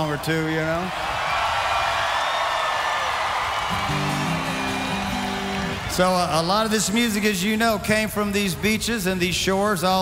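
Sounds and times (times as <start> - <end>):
crowd cheering and whooping: 0.0 - 7.0
acoustic guitar chord ringing: 3.7 - 5.9.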